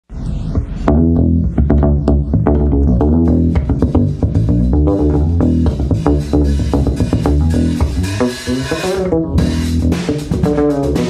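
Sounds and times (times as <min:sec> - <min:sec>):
drum kit with snare: 0:00.1 - 0:11.0
electric bass funky groove: 0:00.1 - 0:11.0.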